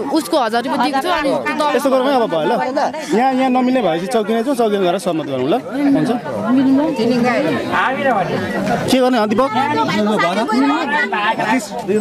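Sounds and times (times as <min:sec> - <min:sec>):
people talking: 0:00.0 - 0:12.0.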